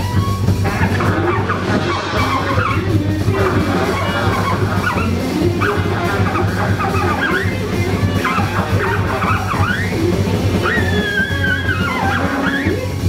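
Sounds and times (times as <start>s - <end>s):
drum kit: 0.0s - 13.0s
electric guitar: 0.0s - 13.0s
saxophone: 0.0s - 13.0s
upright double bass: 0.0s - 13.0s.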